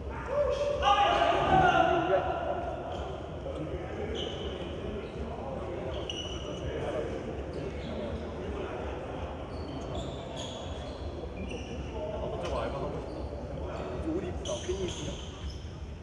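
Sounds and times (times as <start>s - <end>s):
sneaker squeaks on court floor: 4.1s - 5.2s, 5.8s - 8.3s, 9.3s - 16.0s.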